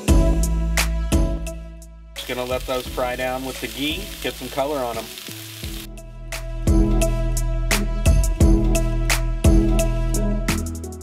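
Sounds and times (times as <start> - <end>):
background music with steady beat: 0.0 - 5.0, 5.7 - 11.0
food sizzling on a griddle: 2.2 - 6.0.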